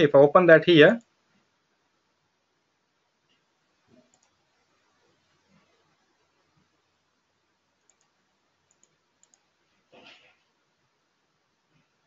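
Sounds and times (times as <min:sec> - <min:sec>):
faint computer mouse clicks: 0:04.0 - 0:04.4, 0:07.8 - 0:09.5.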